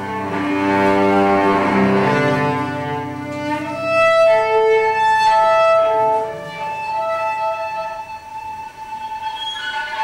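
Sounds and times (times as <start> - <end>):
cello bowed note: 0.0 - 10.0.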